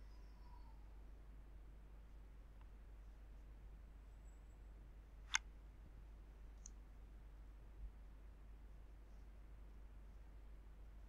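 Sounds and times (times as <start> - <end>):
faint tick: 2.6 - 2.8.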